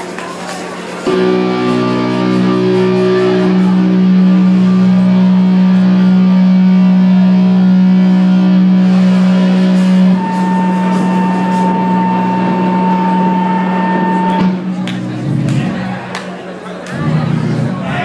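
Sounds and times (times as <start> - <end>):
electric guitar droning note: 1.0 - 16.0
high feedback whine: 1.0 - 16.1.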